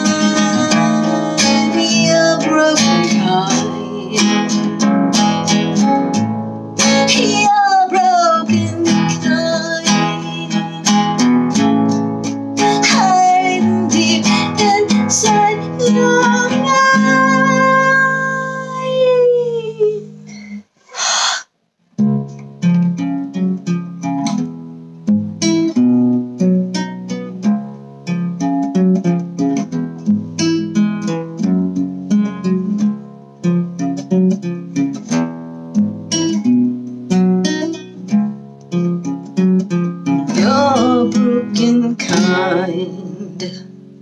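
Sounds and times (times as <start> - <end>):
wordless wavering singing: 0.0 - 4.2
acoustic guitar playing: 0.0 - 20.8, 21.8 - 44.0.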